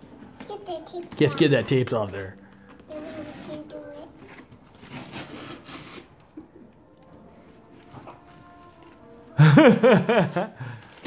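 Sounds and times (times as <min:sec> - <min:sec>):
tape peeling off cardboard: 0:04.2 - 0:06.4.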